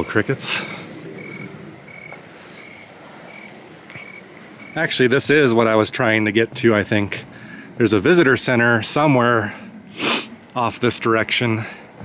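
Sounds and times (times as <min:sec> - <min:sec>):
faint outdoor background noise: 0:00.0 - 0:12.0
crickets chirping: 0:01.2 - 0:04.9.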